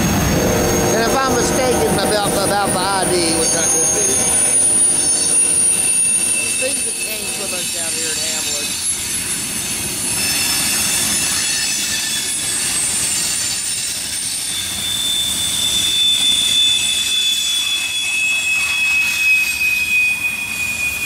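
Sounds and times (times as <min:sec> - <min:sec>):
low train rumble: 0:00.0 - 0:21.0
train wheels squealing: 0:00.0 - 0:21.0.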